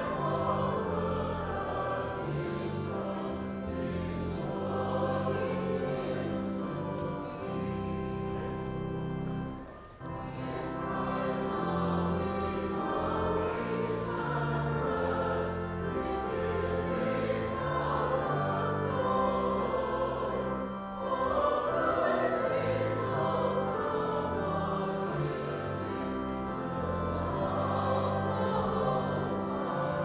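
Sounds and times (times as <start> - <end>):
church choir singing: 0.0 - 30.0.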